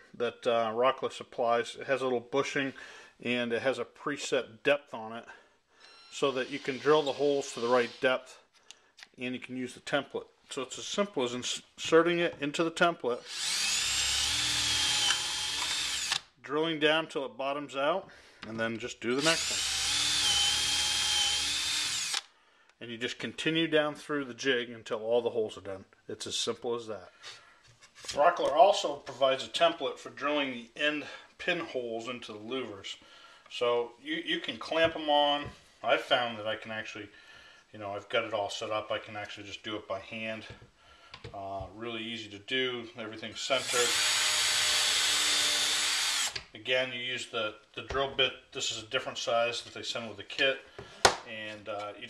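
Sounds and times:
cordless drill whining: 0:05.8 - 0:08.1, 0:13.2 - 0:16.2, 0:19.2 - 0:22.3, 0:43.6 - 0:46.4.

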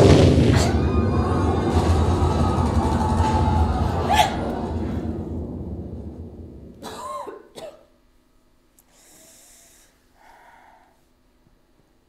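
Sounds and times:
music: 0:00.0 - 0:06.7
person coughing and gasping: 0:06.8 - 0:07.9
quiet breaths: 0:08.8 - 0:12.0.

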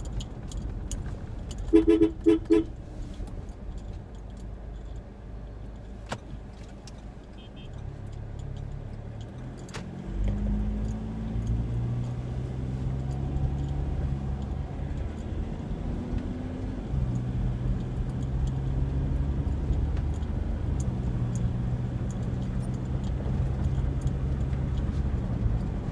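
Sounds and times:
car engine accelerating: 0:07.9 - 0:25.9.

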